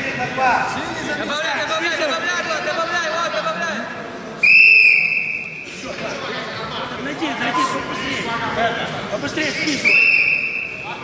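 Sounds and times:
referee's whistle blast: 4.4 - 5.6, 9.8 - 10.8.

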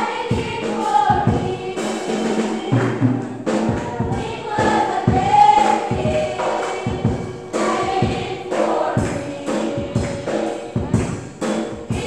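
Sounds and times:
choir singing gospel: 0.0 - 12.0
steady beat: 0.0 - 12.0.

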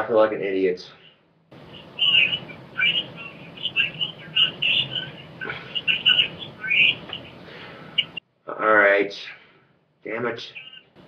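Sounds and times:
steady low hum: 0.0 - 11.0
small birds chirping: 1.6 - 8.2.

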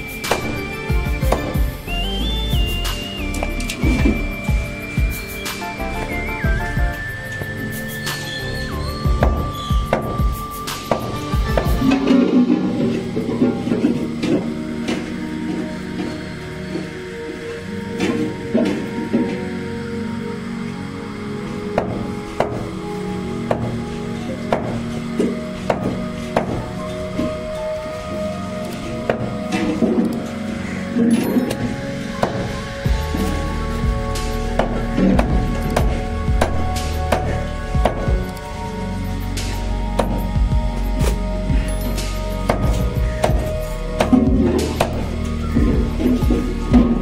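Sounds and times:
background music: 0.0 - 47.0.

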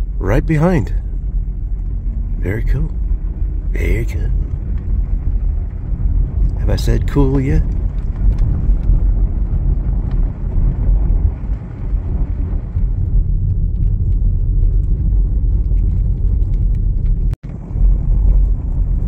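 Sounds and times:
car driving on dirt road: 0.0 - 19.0.

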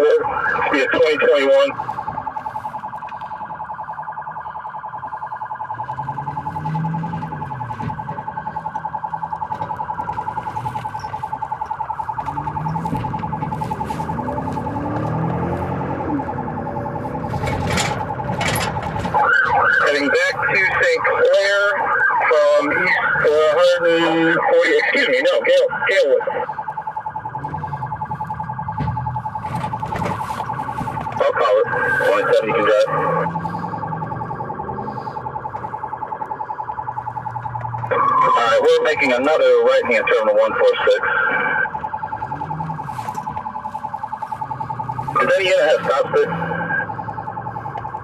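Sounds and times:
police siren warbling: 0.0 - 48.0.

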